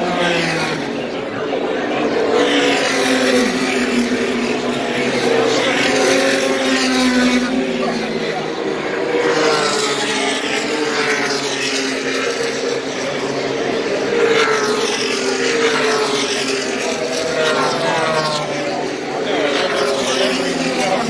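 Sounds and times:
race car engines passing: 0.0 - 21.0.

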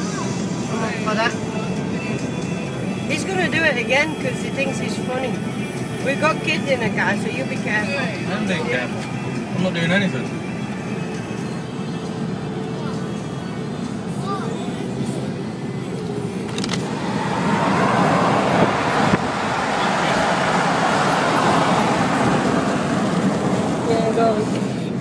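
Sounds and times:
road and wind noise in car: 0.0 - 25.0.

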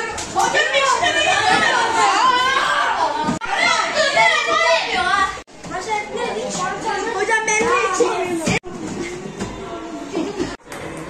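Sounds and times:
boys shouting: 0.4 - 5.4.

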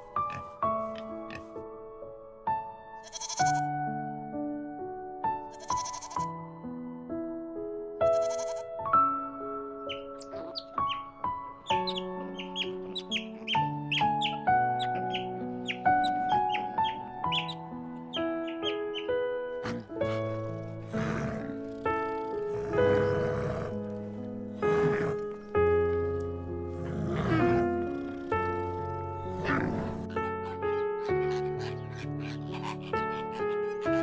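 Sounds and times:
gentle instrumental music: 0.0 - 34.0
goat bleating: 3.0 - 3.6.

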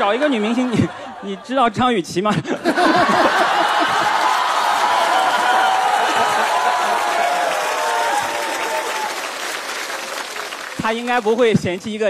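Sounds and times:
man speaking into a microphone: 0.0 - 2.7, 10.8 - 12.0
audience applauding: 2.9 - 11.9.

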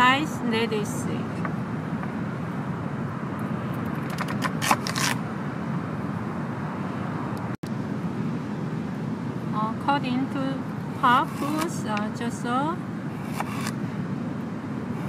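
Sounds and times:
steady background noise: 0.0 - 15.0
knife cutting radish on board: 11.0 - 11.8, 13.2 - 13.8.

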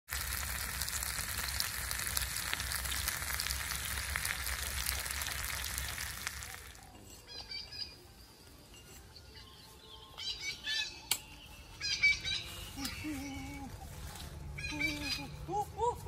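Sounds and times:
fish sizzling on grill: 0.1 - 7.0
faint bird chirps: 6.4 - 13.5.

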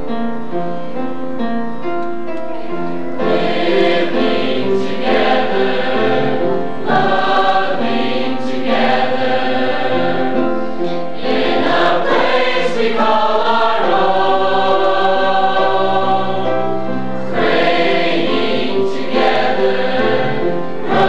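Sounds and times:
piano: 0.0 - 21.0
choir singing: 3.0 - 21.0.

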